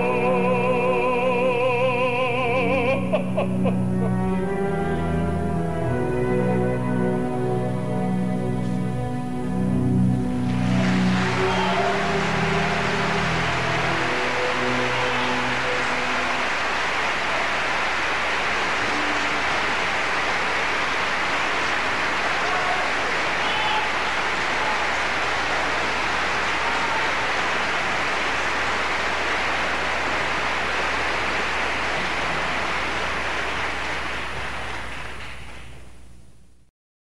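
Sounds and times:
audience applauding: 9.5 - 35.9.

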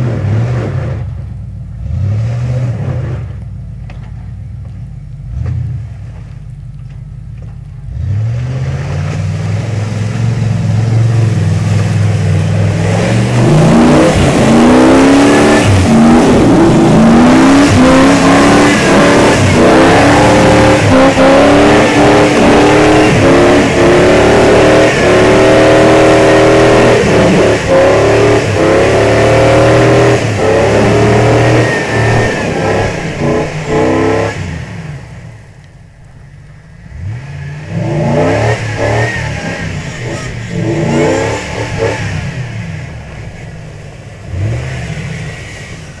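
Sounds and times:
truck engine revving: 0.0 - 46.0.

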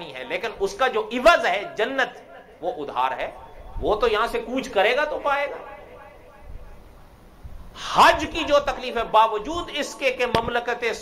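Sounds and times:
man speaking: 0.0 - 5.8, 7.8 - 11.0
faint room hiss: 0.0 - 11.0.

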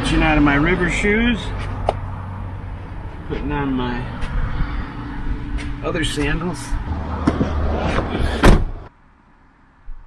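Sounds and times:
car door slamming: 7.2 - 8.9.

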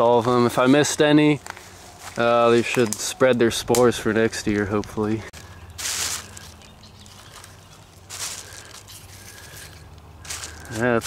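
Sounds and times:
plastic bag crinkling: 5.4 - 11.0.

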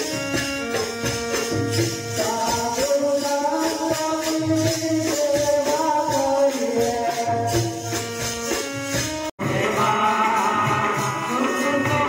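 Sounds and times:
jingling hand percussion: 0.0 - 12.0.

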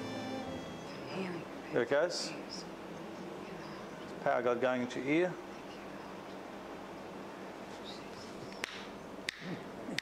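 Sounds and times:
hall hum: 0.0 - 10.0.

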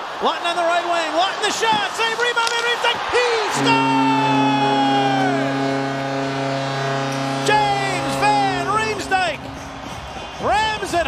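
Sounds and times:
crowd noise: 0.0 - 11.0
arena goal horn: 3.5 - 10.2.

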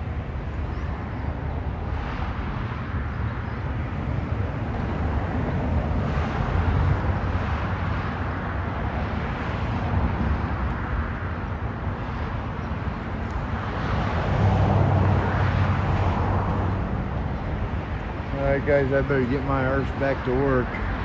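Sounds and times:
road traffic: 0.0 - 21.0.

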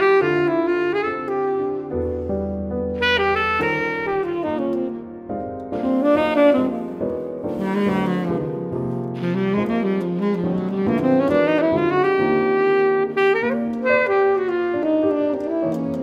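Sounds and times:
piano accompaniment: 0.0 - 16.0
saxophone melody: 0.0 - 16.0.

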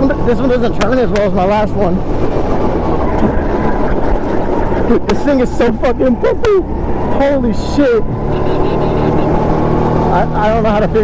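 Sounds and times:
man speaking: 0.0 - 2.0, 4.9 - 9.3, 10.1 - 11.0
go-kart engine drone: 0.0 - 11.0.

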